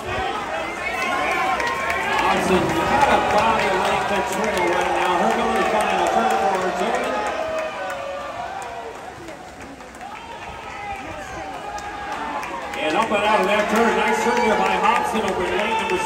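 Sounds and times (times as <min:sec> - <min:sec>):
spectators shouting and cheering: 0:00.0 - 0:16.0.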